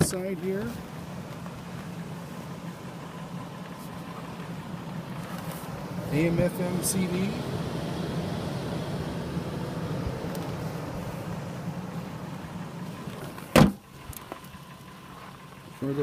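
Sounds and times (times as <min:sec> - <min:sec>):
low hum in truck cab: 0:00.0 - 0:16.0
truck door slamming: 0:13.2 - 0:13.8.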